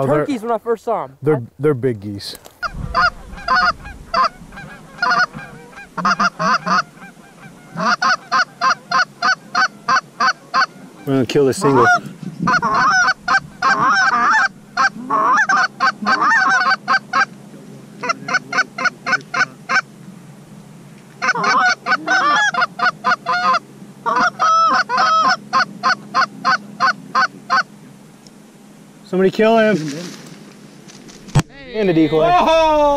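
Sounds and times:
goose call clucks and honks: 2.6 - 17.4, 18.0 - 19.9, 21.2 - 27.7.

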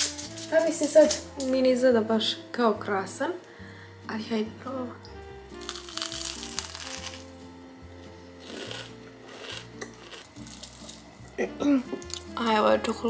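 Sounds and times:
background music: 0.0 - 13.0
chewing crunch: 5.6 - 7.3, 8.4 - 12.3
crunching bite into pastry: 5.6 - 7.4, 8.4 - 11.0.

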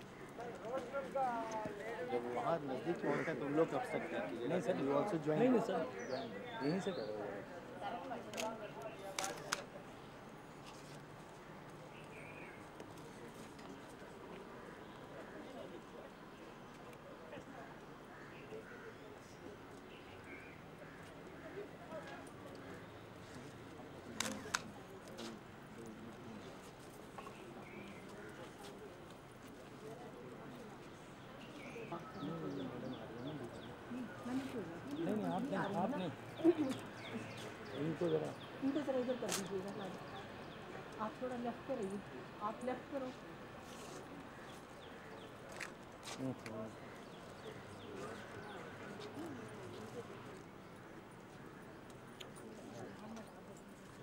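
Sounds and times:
people talking: 0.0 - 9.8, 21.4 - 44.1, 46.0 - 50.5, 52.1 - 54.0
faint indistinct voices: 0.0 - 54.0.

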